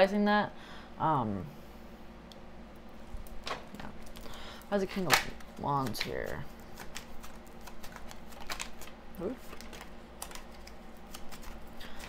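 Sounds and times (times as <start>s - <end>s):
cards being shuffled: 5.0s - 12.0s.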